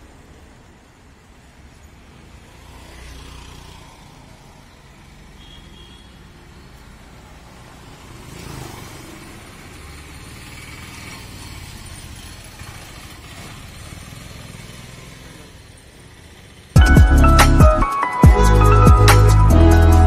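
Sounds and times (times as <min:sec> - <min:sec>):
scooters passing: 0:00.0 - 0:16.9.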